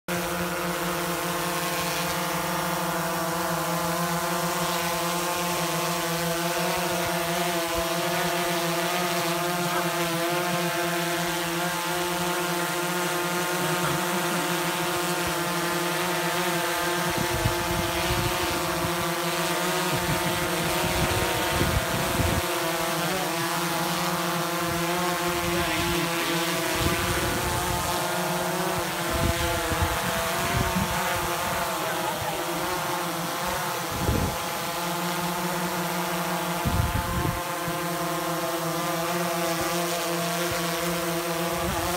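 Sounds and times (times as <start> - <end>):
drone propellers buzzing: 0.1 - 41.9.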